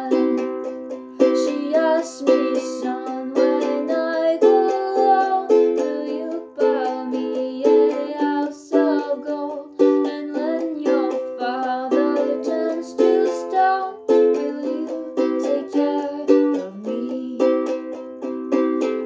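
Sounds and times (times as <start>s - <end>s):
ukulele strumming chords: 0.0s - 19.0s.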